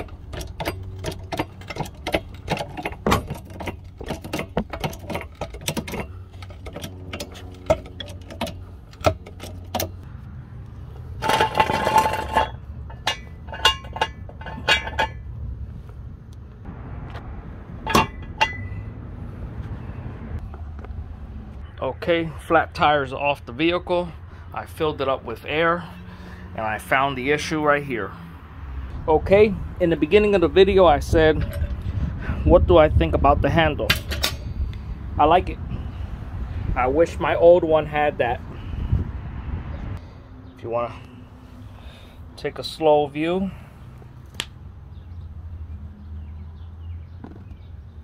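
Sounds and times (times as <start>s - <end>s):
metal jack stand rattling: 0.0s - 10.0s, 11.1s - 15.4s, 17.8s - 18.9s, 31.0s - 31.9s, 33.8s - 34.6s.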